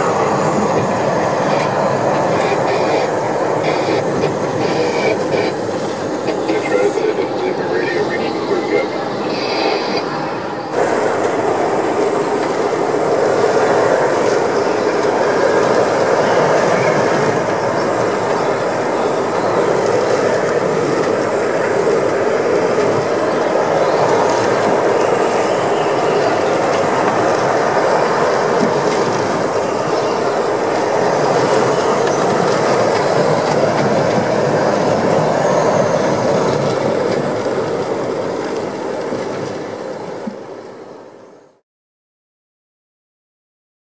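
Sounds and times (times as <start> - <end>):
roaring wind: 0.0 - 41.6.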